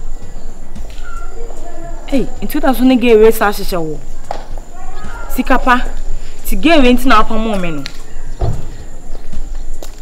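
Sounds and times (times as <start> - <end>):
footsteps on hard paving: 0.0 - 10.0
outdoor background noise: 0.0 - 10.0.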